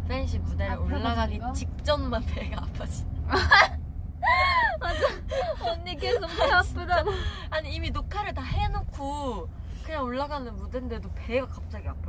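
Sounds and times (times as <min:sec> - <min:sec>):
van cabin hum: 0:00.0 - 0:12.0
women laughing: 0:03.3 - 0:07.3.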